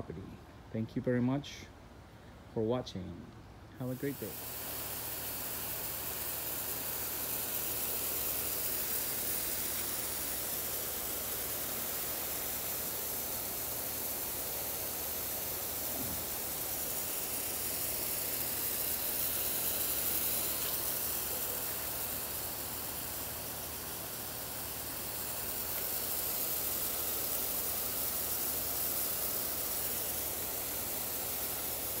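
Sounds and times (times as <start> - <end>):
sprinkler water spray hissing: 3.8 - 32.0.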